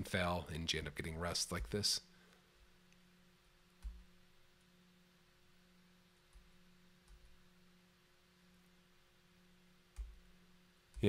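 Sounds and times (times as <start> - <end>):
low steady hum: 0.0 - 11.0
computer mouse clicking: 3.8 - 4.1, 9.9 - 10.2.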